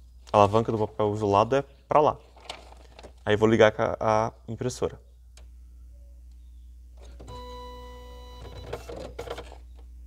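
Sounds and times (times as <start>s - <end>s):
printer mechanical rattling: 8.5s - 9.6s.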